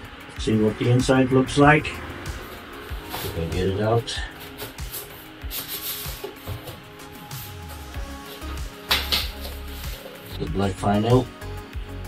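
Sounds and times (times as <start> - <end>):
background music: 0.0 - 12.0
paper and card rubbing: 4.3 - 10.3.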